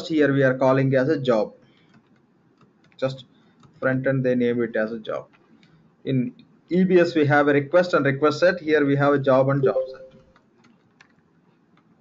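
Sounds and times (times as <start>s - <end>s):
keyboard typing clicks: 1.8s - 3.9s, 9.6s - 12.0s
mouse clicks: 1.8s - 3.9s.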